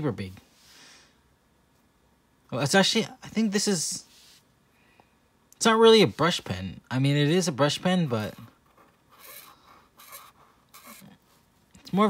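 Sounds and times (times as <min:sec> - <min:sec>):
felt marker rubbing on paper: 0:08.2 - 0:11.1.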